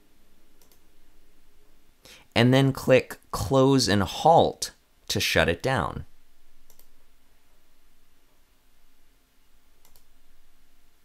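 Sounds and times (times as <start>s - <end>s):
low room noise: 0.0s - 11.0s
computer mouse click: 0.6s - 0.8s, 6.6s - 6.9s, 9.8s - 10.1s.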